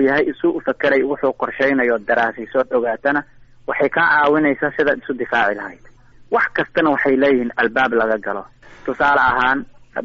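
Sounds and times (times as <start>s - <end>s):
person talking: 0.0s - 10.0s.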